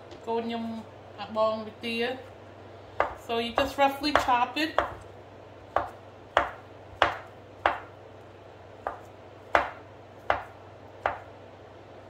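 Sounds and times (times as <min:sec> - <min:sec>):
knife chopping on wooden board: 0:03.0 - 0:05.0, 0:05.7 - 0:08.0, 0:08.8 - 0:11.3.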